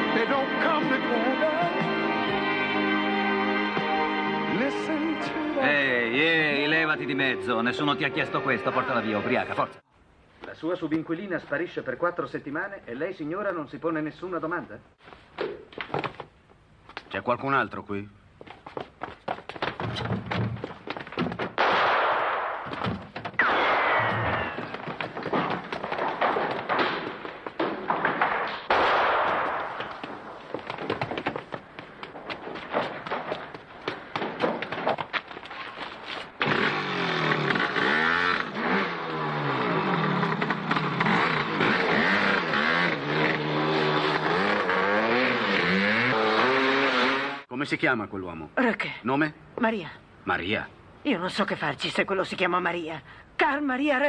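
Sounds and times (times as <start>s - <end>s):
knocks and thumps of people running: 15.4s - 17.1s, 18.4s - 21.6s, 22.6s - 23.4s, 24.1s - 28.6s, 29.4s - 36.4s
loud crash: 21.6s - 29.8s
dirt bike engine revving: 36.4s - 47.5s.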